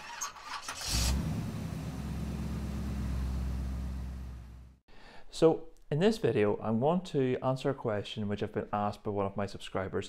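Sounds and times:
car engine idling: 0:01.1 - 0:04.8.

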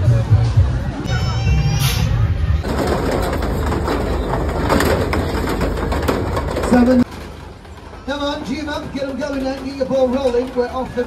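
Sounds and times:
crowd chattering: 0:00.0 - 0:11.0
clatter: 0:02.6 - 0:11.0.

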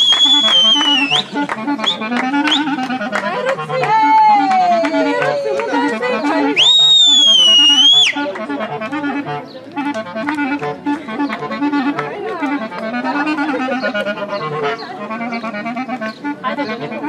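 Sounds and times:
clarinet lead: 0:00.0 - 0:17.0.

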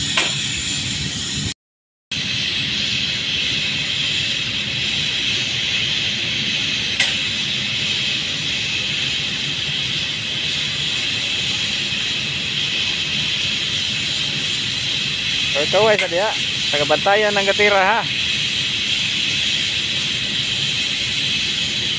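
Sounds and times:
paint spray gun hissing: 0:02.2 - 0:21.9.

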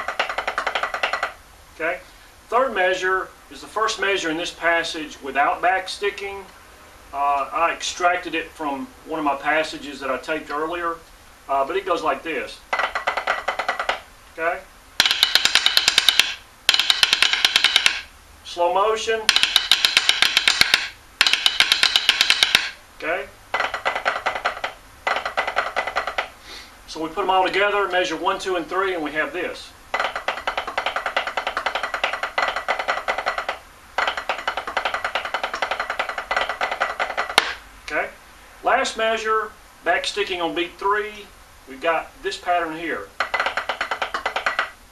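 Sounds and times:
snare drum stick strokes: 0:15.0 - 0:18.1, 0:19.3 - 0:22.8, 0:30.0 - 0:37.6.

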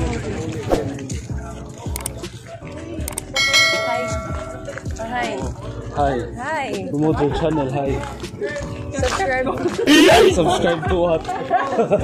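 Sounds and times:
bell chime: 0:03.4 - 0:04.9.

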